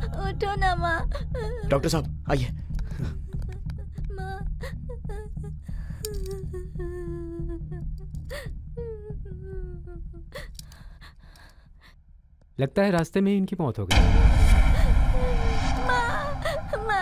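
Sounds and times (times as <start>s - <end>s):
low drone: 13.9s - 17.0s.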